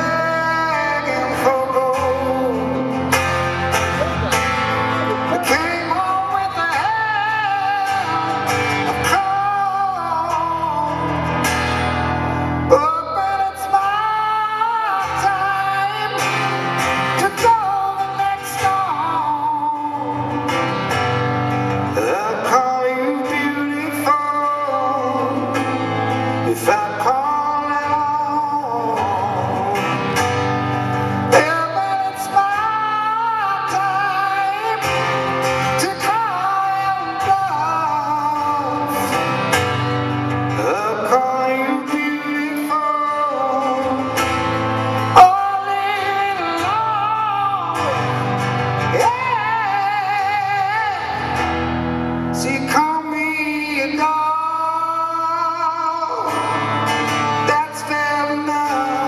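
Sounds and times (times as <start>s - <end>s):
strummed acoustic guitar: 0.0s - 59.0s
man singing high held notes: 3.7s - 11.2s.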